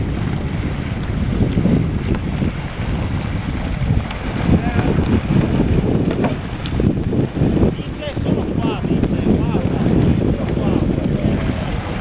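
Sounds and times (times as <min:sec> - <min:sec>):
water splashing from kayaks: 0:00.0 - 0:12.0
wind rumbling on microphone: 0:00.0 - 0:12.0.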